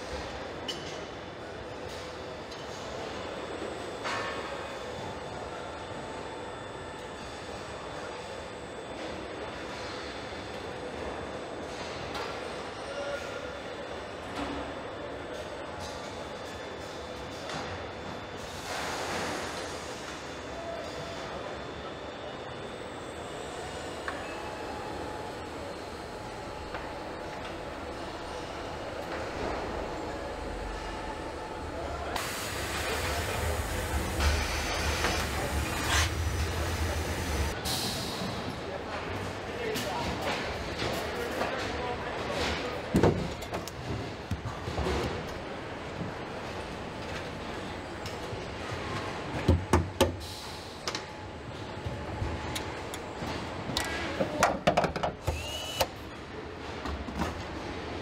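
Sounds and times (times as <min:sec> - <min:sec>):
low machinery hum: 0:01.4 - 0:54.4.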